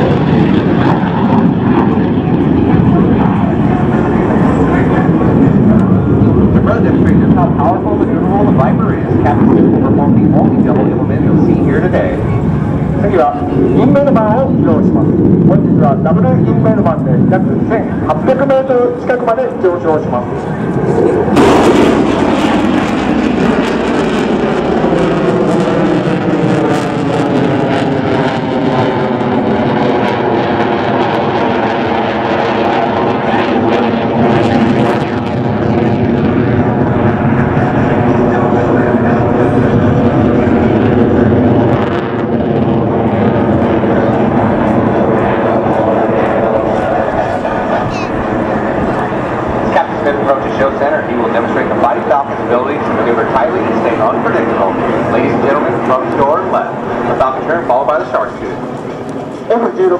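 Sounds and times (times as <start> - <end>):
fighter jet flying overhead: 0.0 - 59.9.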